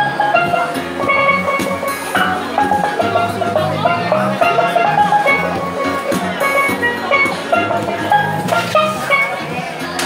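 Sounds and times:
steelpan melody: 0.0s - 10.0s.

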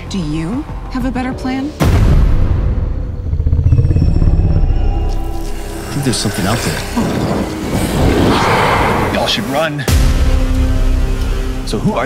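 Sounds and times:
deep rumbling drone: 2.3s - 9.5s.

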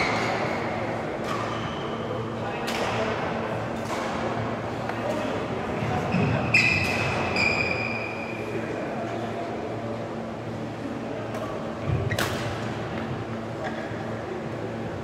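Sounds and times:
murmur of voices: 0.0s - 15.0s
shoe squeaks on court floor: 6.1s - 8.1s.

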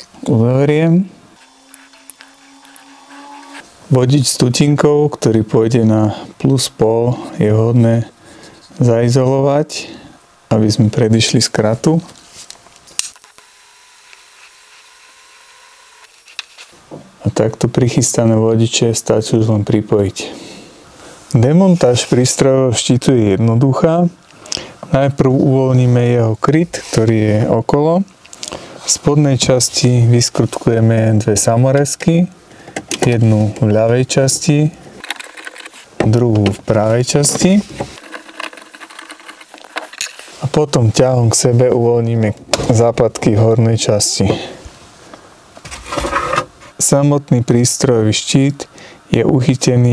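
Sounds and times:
faint steady hum: 0.0s - 49.9s
screwdriver clicking and scraping: 1.4s - 3.6s, 38.0s - 40.2s
wire handling noise: 35.0s - 40.3s.

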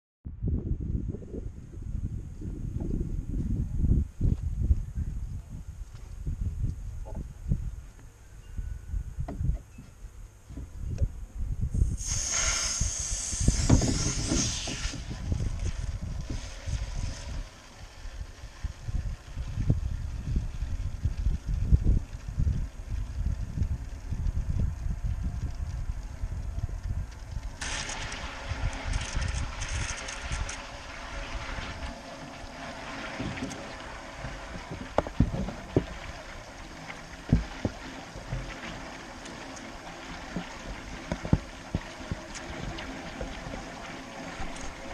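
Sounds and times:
wind rumble on microphone: 0.2s - 44.9s.

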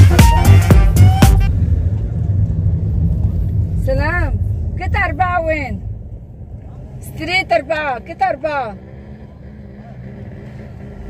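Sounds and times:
music: 0.0s - 1.6s
car engine rumble: 0.0s - 11.0s
road noise: 0.0s - 11.0s.

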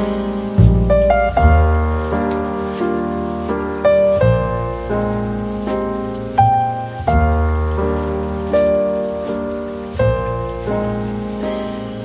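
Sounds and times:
calm jazz-blues instrumental: 0.0s - 12.0s.

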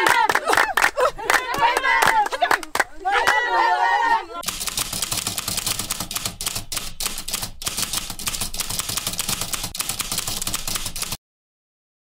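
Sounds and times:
typewriter keystroke clicks: 4.4s - 11.2s.

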